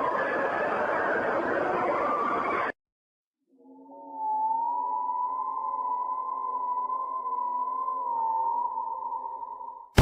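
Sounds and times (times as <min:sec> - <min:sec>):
eerie electronic drone: 0:03.5 - 0:09.9.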